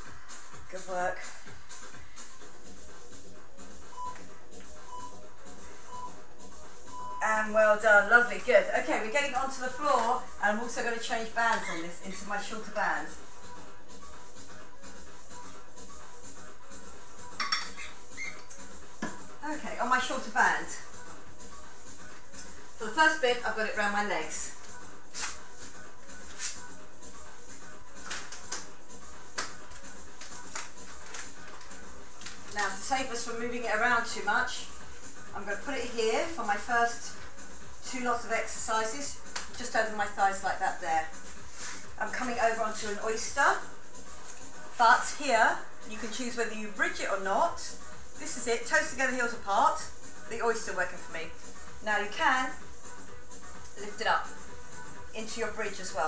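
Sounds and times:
workout music: 0.0 - 56.0.

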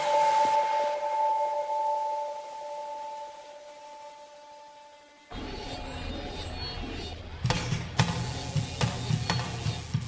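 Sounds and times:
two-note electronic chime: 0.0 - 6.8.

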